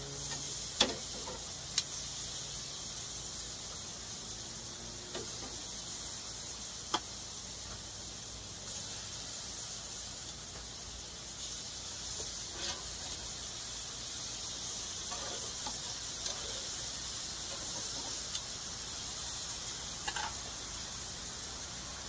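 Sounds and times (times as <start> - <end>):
meat sizzling on a grill: 0.0 - 22.0.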